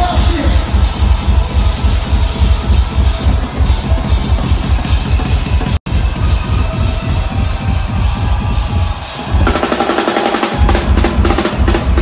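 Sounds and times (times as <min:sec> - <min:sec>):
bass: 0:00.0 - 0:12.0
heavy kick drum beat: 0:00.0 - 0:12.0
live concert music: 0:00.0 - 0:12.0.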